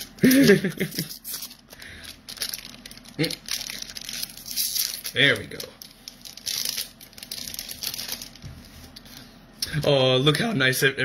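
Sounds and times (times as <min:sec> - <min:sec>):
foil wrappers crinkling: 0:00.0 - 0:09.3.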